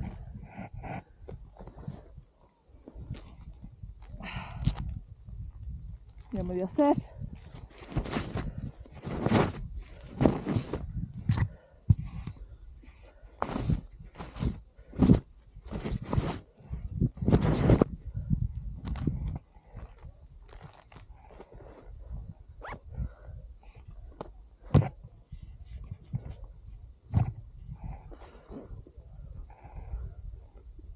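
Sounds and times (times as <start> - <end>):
snow crunching and swishing: 6.8 - 10.9.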